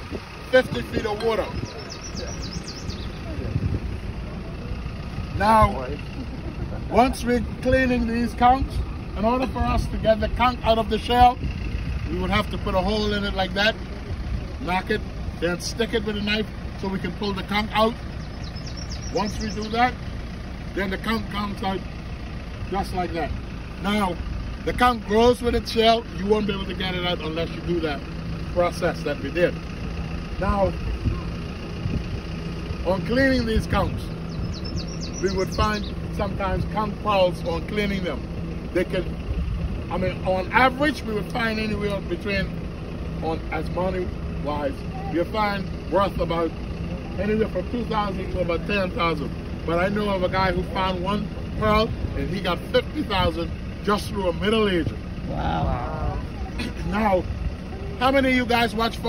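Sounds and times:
low engine hum: 0.0s - 59.0s
low outdoor background rumble: 0.0s - 59.0s
man talking: 0.4s - 1.6s, 5.3s - 6.2s, 6.8s - 11.4s, 12.0s - 13.8s, 14.6s - 18.0s, 19.1s - 20.0s, 20.8s - 21.9s, 22.7s - 29.6s, 30.4s - 30.8s, 32.8s - 34.1s, 35.2s - 39.2s, 39.9s - 42.6s, 43.2s - 46.6s, 47.2s - 57.3s, 58.0s - 59.0s.

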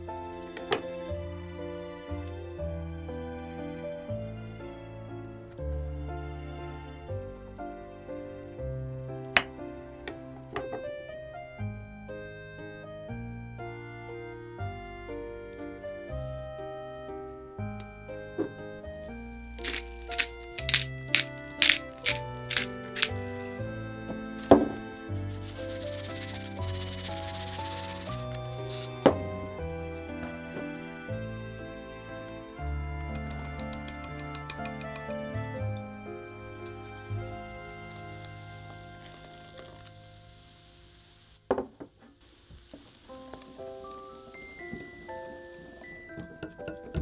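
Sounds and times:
soft background music: 0.0s - 41.0s, 43.0s - 47.0s
pepper sprinkling bursts: 19.5s - 23.6s, 25.3s - 29.0s
whisk stirring batter: 25.4s - 28.2s.

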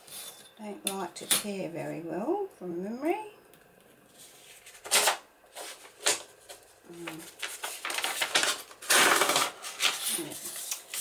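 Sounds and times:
paper rustling: 4.1s - 11.0s
paper crackling: 4.2s - 11.0s
paper tearing: 7.0s - 11.0s.

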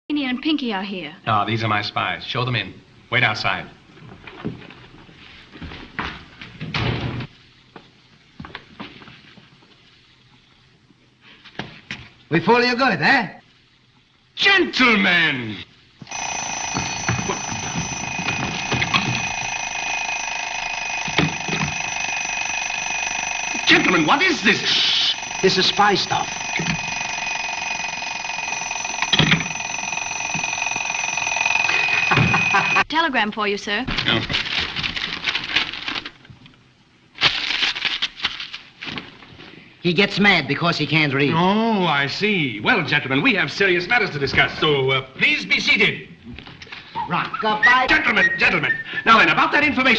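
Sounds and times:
faint steady hum: 0.1s - 33.8s
alarm clock bell ringing: 16.1s - 32.8s.

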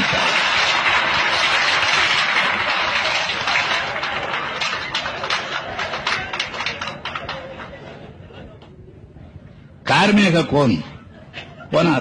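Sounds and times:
crowd applauding: 0.0s - 8.2s.

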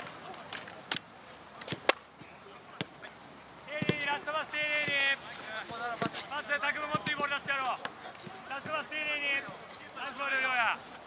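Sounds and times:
football kicked thump: 3.8s - 4.1s.

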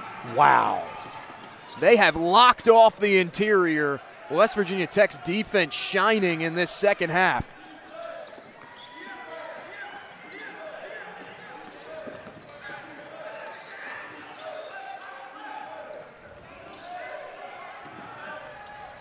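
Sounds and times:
players calling out in gym: 0.2s - 1.1s, 1.8s - 7.5s.

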